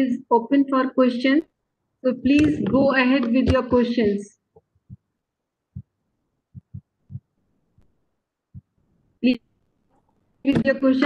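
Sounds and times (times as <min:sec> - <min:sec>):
faint low thumps: 0:05.7 - 0:07.3.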